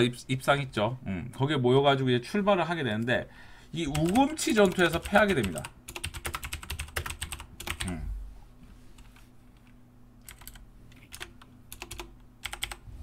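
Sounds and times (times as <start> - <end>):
keyboard keys clicking: 3.9 - 7.9, 10.2 - 12.8.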